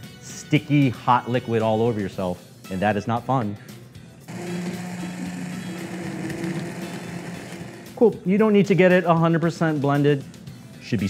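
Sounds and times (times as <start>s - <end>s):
immersion blender motor hum: 4.3s - 8.0s.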